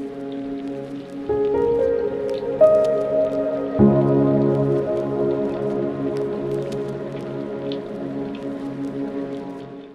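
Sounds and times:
soft sustained synth notes: 0:00.0 - 0:09.9.

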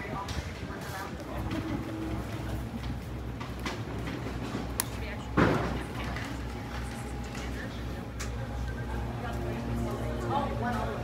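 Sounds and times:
construction site rumble: 0:00.0 - 0:11.0.

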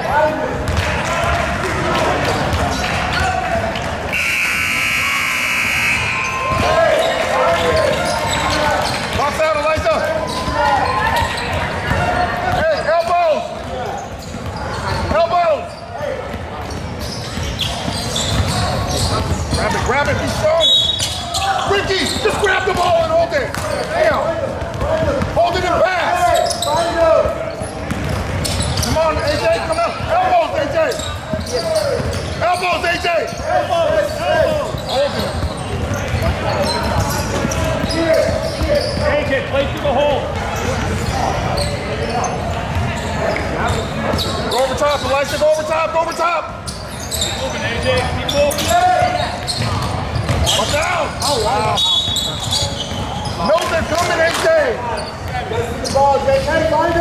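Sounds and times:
basketball bouncing: 0:00.6 - 0:04.3, 0:07.6 - 0:12.6, 0:16.2 - 0:20.4, 0:21.0 - 0:25.8, 0:26.8 - 0:30.1, 0:33.3 - 0:41.5, 0:42.5 - 0:43.1, 0:48.5 - 0:50.8
buzzer: 0:04.1 - 0:06.4.

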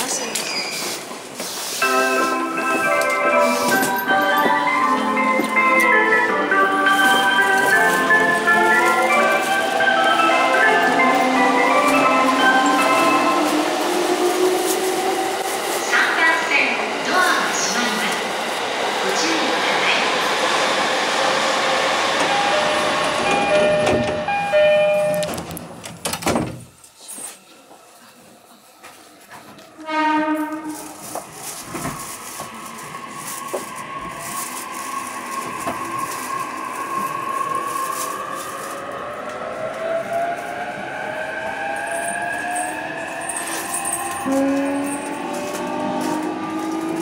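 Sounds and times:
departure melody over speakers: 0:01.8 - 0:13.4.

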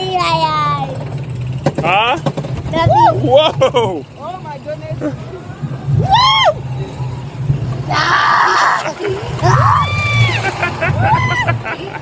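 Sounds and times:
roller coaster rumbling: 0:00.0 - 0:12.0.

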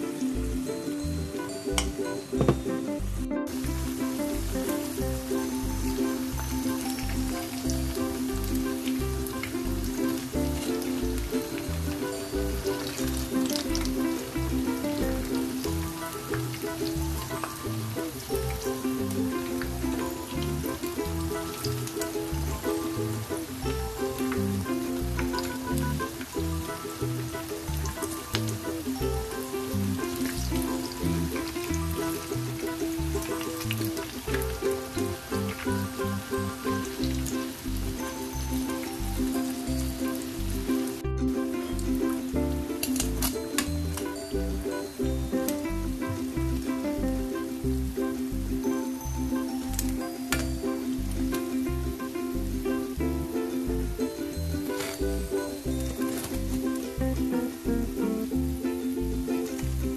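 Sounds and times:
background music with steady beat: 0:00.0 - 0:59.7
fritters sizzling in hot oil: 0:00.1 - 0:53.1, 0:53.7 - 0:59.9.

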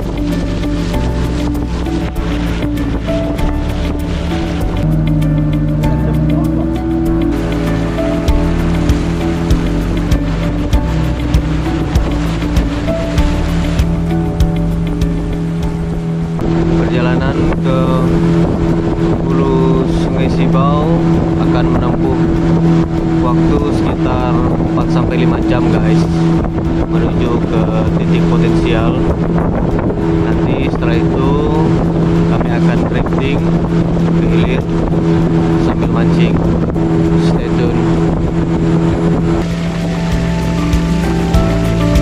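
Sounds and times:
background music with a beat: 0:00.0 - 0:16.0, 0:39.4 - 0:42.0
motorboat engine running: 0:00.0 - 0:42.0
man talking: 0:06.0 - 0:06.8, 0:16.8 - 0:18.2, 0:19.2 - 0:22.4, 0:23.2 - 0:26.3, 0:26.9 - 0:29.1, 0:30.2 - 0:33.4, 0:34.2 - 0:34.7, 0:35.6 - 0:36.5, 0:37.1 - 0:38.0.

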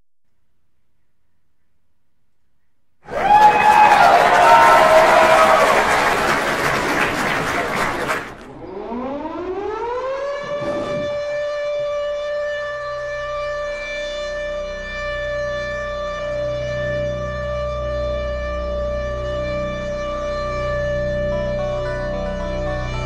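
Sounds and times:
noisy burst with falling tones: 0:07.6 - 0:16.5
rising siren-like tone: 0:08.4 - 0:23.0.

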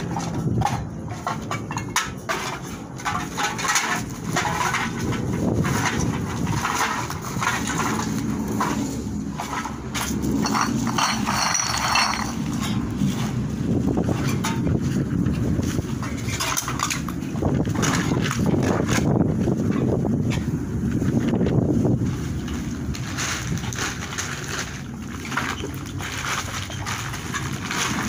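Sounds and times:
cans and bottles clattering: 0:00.0 - 0:20.6, 0:22.4 - 0:28.0
wind buffeting microphone: 0:00.0 - 0:28.0
plastic sack rustling: 0:20.9 - 0:28.0.

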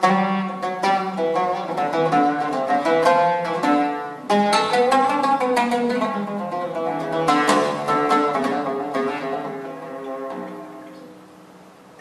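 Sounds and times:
oud plucked notes: 0:00.0 - 0:12.0.

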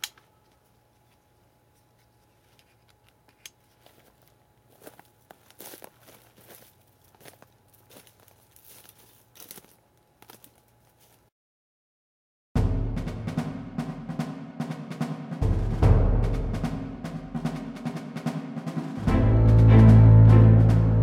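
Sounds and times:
twigs scraping against clothing: 0:01.0 - 0:11.3
footsteps crunching through dry grass: 0:03.6 - 0:11.3.

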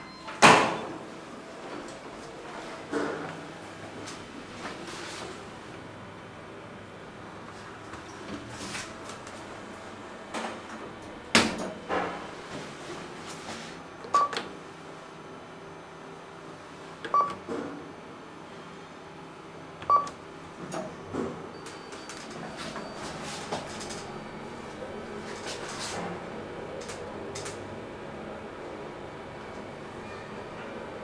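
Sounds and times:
elevator humming: 0:00.0 - 0:17.5, 0:19.0 - 0:31.0.

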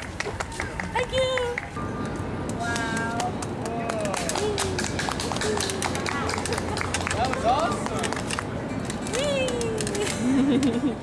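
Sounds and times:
street background noise: 0:00.0 - 0:11.0
people's voices: 0:00.1 - 0:11.0.

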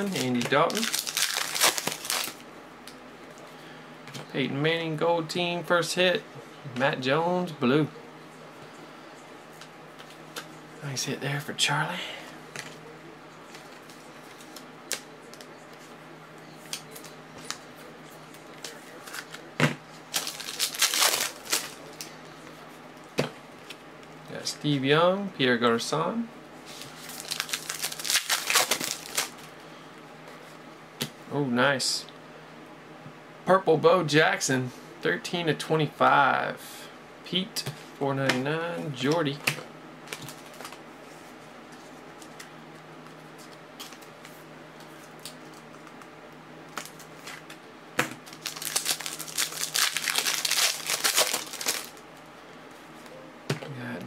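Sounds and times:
foil wrapper crinkling: 0:00.0 - 0:02.4, 0:20.1 - 0:22.1, 0:26.7 - 0:29.5, 0:48.2 - 0:52.0.

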